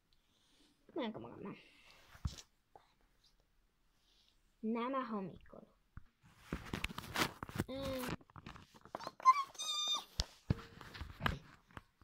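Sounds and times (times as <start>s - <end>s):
child making squeaky animal call: 9.0s - 10.1s.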